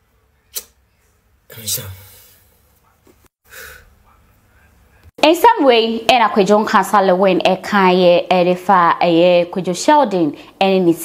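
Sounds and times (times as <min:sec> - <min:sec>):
brief vocal sound: 0:01.5 - 0:02.5.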